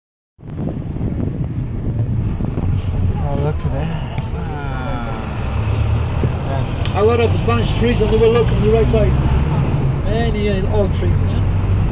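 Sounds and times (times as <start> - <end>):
bus engine rumble: 0.4 - 11.9.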